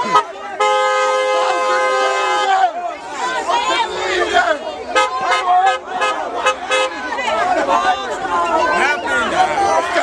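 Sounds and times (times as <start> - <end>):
crowd shouting and chattering: 0.0 - 10.0.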